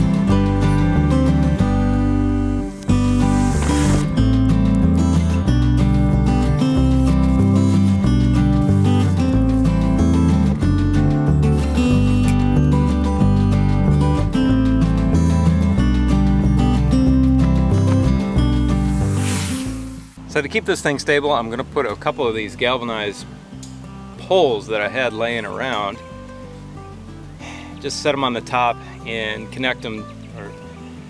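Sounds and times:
acoustic guitar music: 0.0s - 31.0s.

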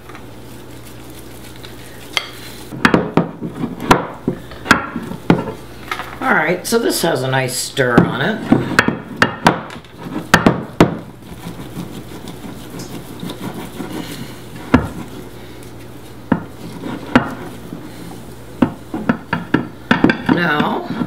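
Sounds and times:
soft stirring of thick batter: 0.0s - 2.8s, 11.2s - 18.9s.

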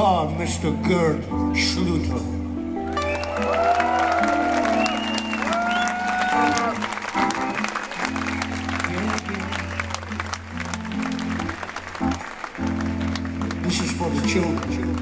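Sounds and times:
live band bass and keyboard chords: 0.0s - 15.0s
audience applause: 2.9s - 15.0s.

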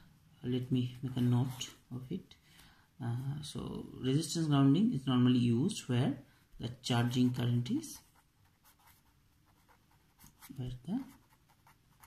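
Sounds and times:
pen scratching on paper: 7.1s - 12.0s.

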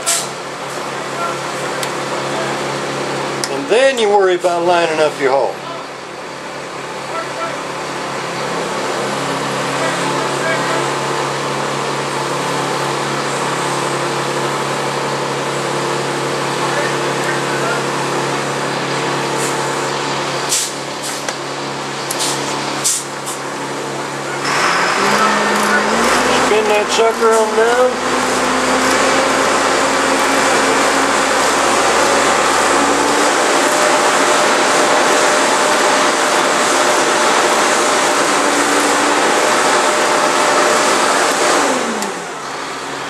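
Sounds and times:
machine hum: 0.0s - 43.0s.

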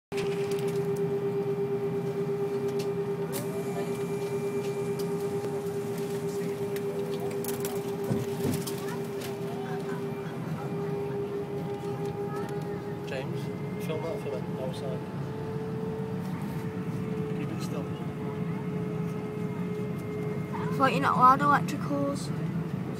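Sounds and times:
airliner cabin hum: 0.1s - 22.9s
faint passenger chatter: 0.2s - 22.9s.

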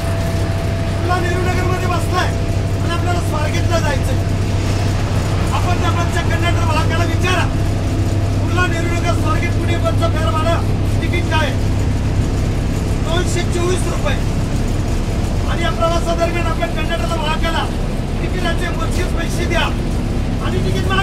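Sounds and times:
bus engine drone: 0.0s - 21.0s
man speaking loudly: 0.8s - 4.3s, 5.4s - 7.7s, 8.4s - 11.6s, 13.0s - 14.3s, 15.4s - 19.8s, 20.4s - 21.0s.

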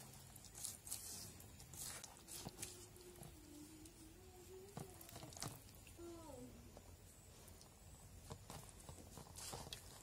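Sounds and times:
dough squelching: 0.0s - 6.0s, 6.6s - 10.0s.

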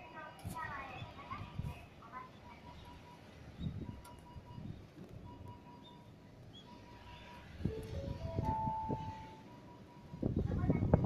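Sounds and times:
public-address chime: 7.7s - 10.1s.

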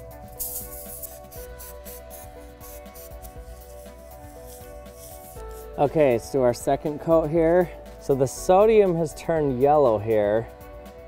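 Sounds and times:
background music with held tones: 0.0s - 11.0s
sugar pouring onto foil: 0.4s - 5.7s.

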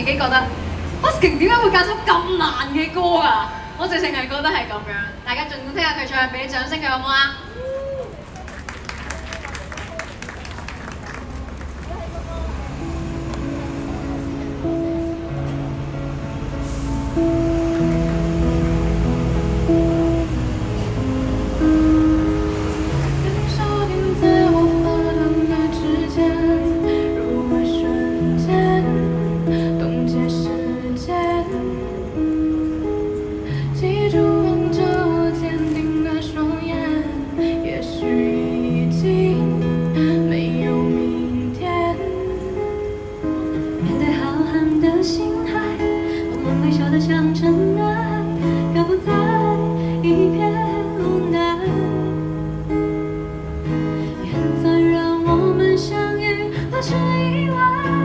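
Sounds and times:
held accompaniment notes: 11.4s - 58.0s
guitar chords: 12.3s - 58.0s
woman singing: 23.0s - 32.4s, 33.5s - 43.0s, 43.8s - 52.5s, 54.1s - 58.0s.

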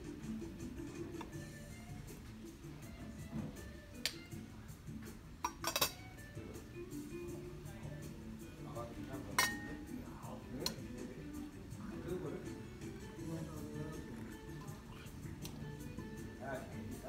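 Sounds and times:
china teacups clinking: 5.4s - 6.1s, 9.4s - 9.8s.

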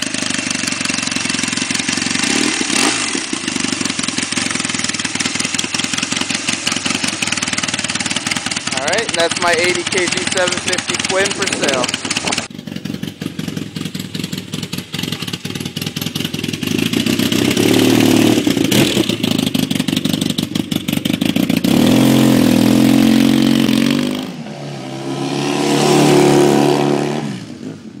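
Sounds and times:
motorcycle engine revving: 0.0s - 28.0s.

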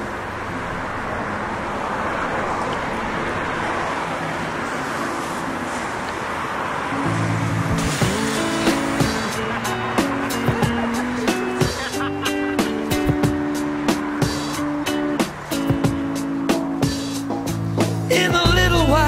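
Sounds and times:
road traffic passing: 0.0s - 19.0s
music with held notes: 7.0s - 19.0s
sharp percussive beat: 7.6s - 18.7s.

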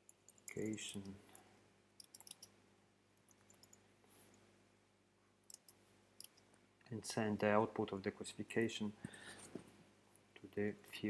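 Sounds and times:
computer keyboard typing: 2.0s - 2.5s, 3.2s - 3.8s.

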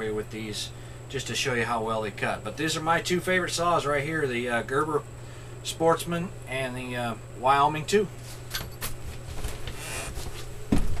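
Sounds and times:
steady low hum: 0.0s - 11.0s
rustling and soft knocks: 8.9s - 11.0s.

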